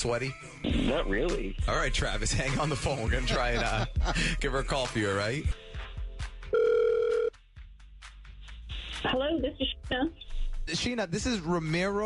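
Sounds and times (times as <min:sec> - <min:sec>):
telephone ringback tone: 0:06.5 - 0:07.3.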